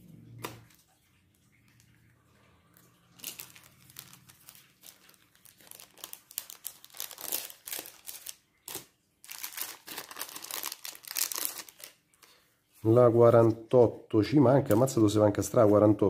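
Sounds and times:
plastic bag crinkling: 0:02.7 - 0:12.8.

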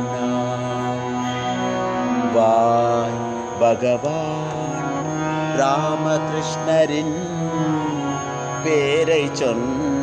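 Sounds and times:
person singing devotional song: 0:00.0 - 0:10.0
steady drone: 0:00.0 - 0:10.0.

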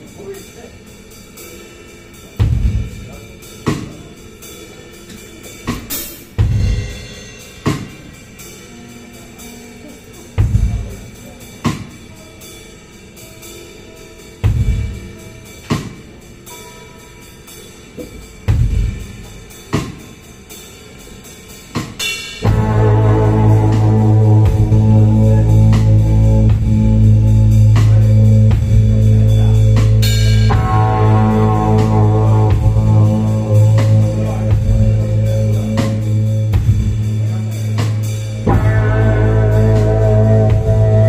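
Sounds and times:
rock band playing: 0:00.0 - 0:41.0.

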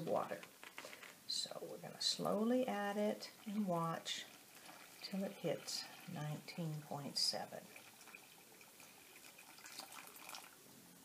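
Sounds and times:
water trickling into a bowl: 0:02.2 - 0:10.6.

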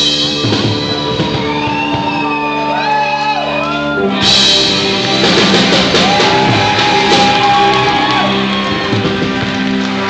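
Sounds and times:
rock band sustained chord: 0:00.0 - 0:10.0
person shouting gliding notes: 0:00.3 - 0:09.0.

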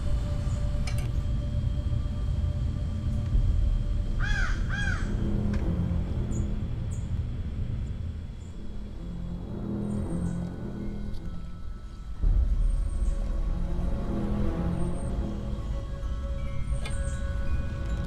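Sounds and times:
background music with low notes: 0:00.0 - 0:18.0
crow cawing: 0:04.2 - 0:05.3.

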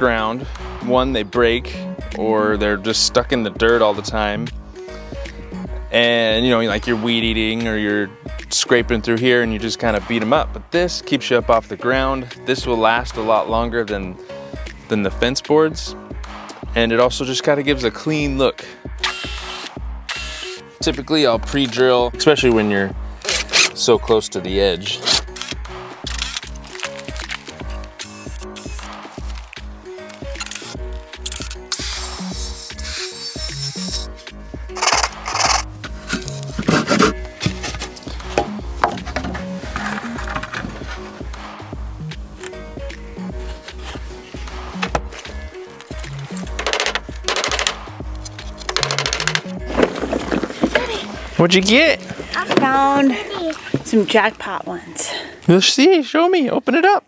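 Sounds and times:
background music with steady beat: 0:00.0 - 0:55.2.

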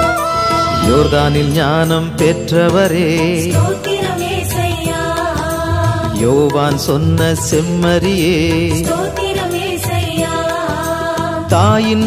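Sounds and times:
low accompaniment: 0:00.0 - 0:07.8
person singing devotional song: 0:00.0 - 0:12.0.

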